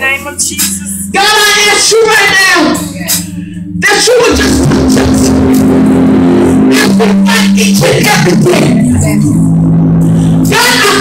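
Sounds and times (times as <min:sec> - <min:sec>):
sustained keyboard chord: 0:00.0 - 0:11.0.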